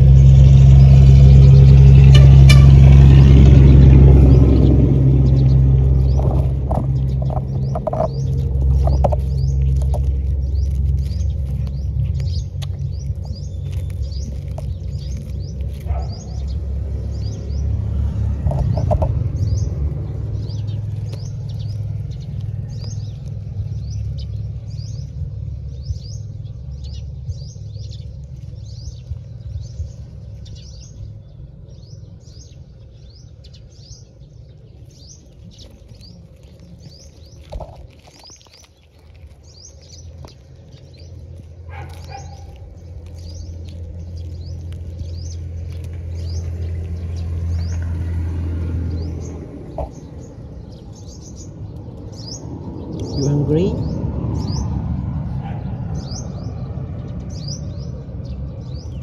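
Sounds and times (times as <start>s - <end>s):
small birds chirping: 0.0s - 59.0s
steady low rumble: 0.0s - 59.0s.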